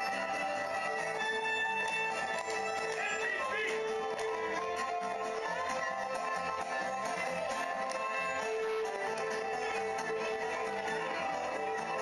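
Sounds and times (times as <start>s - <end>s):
country music with plucked guitar: 0.0s - 12.0s.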